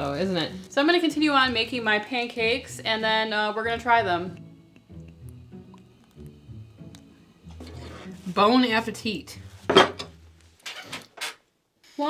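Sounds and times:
plate and knife scraping on table: 7.5s - 8.3s.

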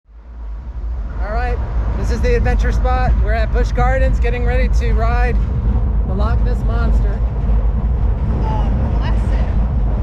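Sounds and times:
low steady rumble: 0.1s - 10.0s.

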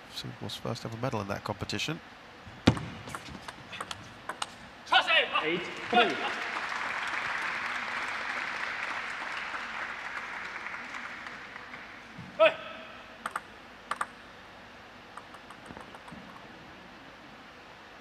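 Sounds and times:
table tennis ball bouncing: 2.6s - 4.6s, 13.2s - 14.2s, 15.2s - 16.5s
crowd applause: 5.6s - 12.2s.

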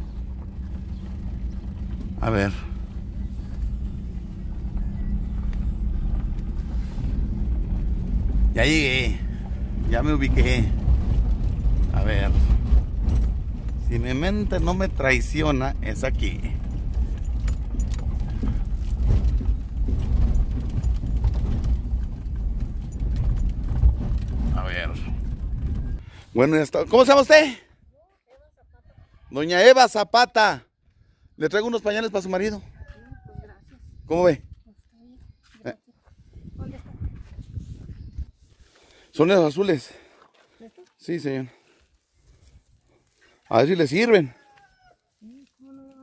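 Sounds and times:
car engine and road rumble: 0.0s - 27.4s, 31.0s - 40.0s
loose items rattling: 0.1s - 26.0s.

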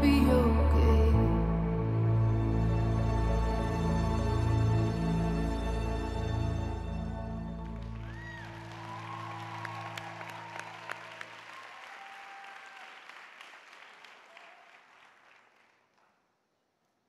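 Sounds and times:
audience applause: 7.5s - 16.2s.

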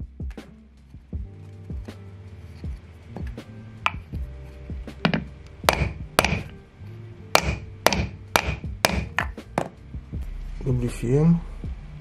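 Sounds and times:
hammer striking wooden block: 3.2s - 4.1s, 5.0s - 6.5s, 7.3s - 9.8s.

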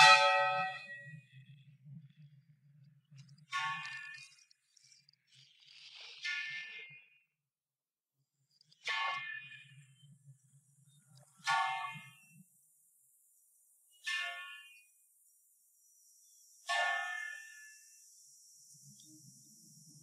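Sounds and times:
church bell strokes: 0.0s - 1.0s.

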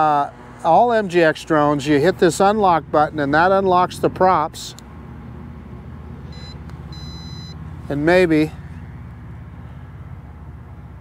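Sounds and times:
high electronic beeps: 6.3s - 7.6s.

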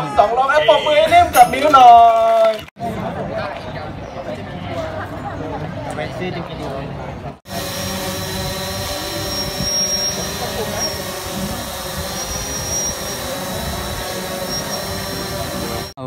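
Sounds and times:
drone propellers whining: 7.5s - 16.0s.

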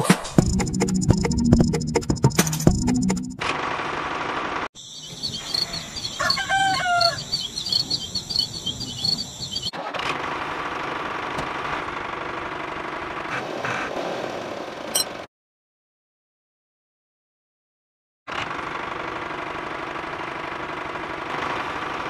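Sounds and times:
bird chirping: 4.8s - 9.7s.

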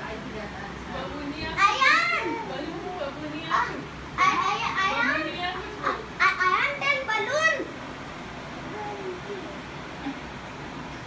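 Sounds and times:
background talk: 0.0s - 7.8s, 8.6s - 10.2s
children shouting and squealing: 1.6s - 2.7s.

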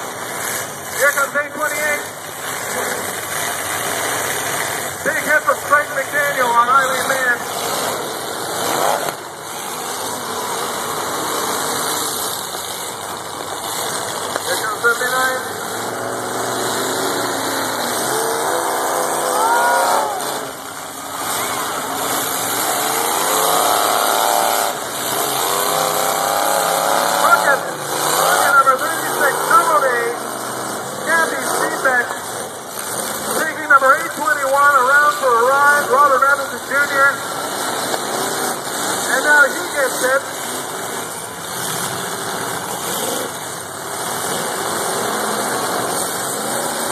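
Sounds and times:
car engines revving: 0.0s - 46.9s
cars hitting knocks: 2.2s - 46.9s
crowd din: 14.2s - 24.7s.

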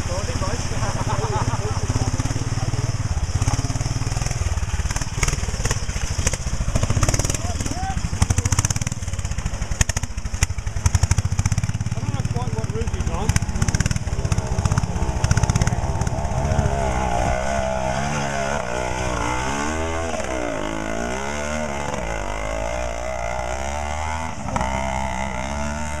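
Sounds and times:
two-stroke motorcycle engines revving: 0.0s - 26.0s.

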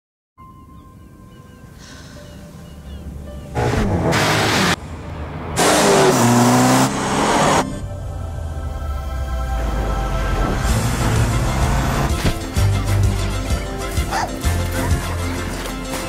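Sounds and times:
car engine revving: 3.5s - 12.4s
low musical drone: 6.6s - 16.0s.

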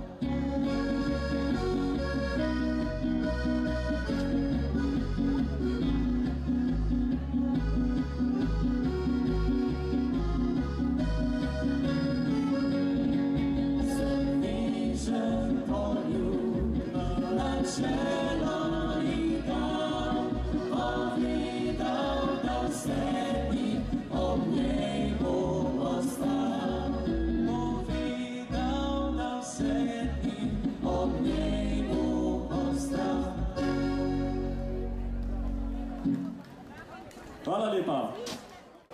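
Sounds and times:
held sung notes: 0.0s - 35.0s
bass: 0.0s - 36.5s
folk band playing live: 0.0s - 36.8s
guitar: 0.0s - 36.9s.

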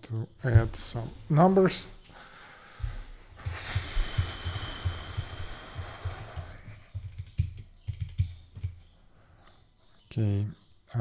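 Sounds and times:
typing on computer keyboard: 4.0s - 8.8s.

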